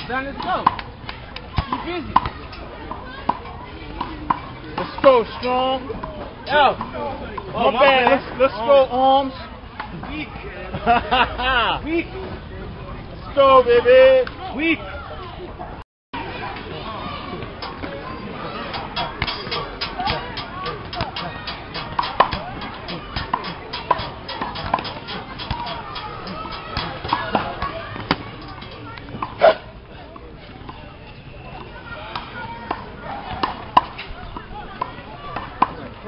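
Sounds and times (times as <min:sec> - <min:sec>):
people talking in background: 0:00.0 - 0:36.0.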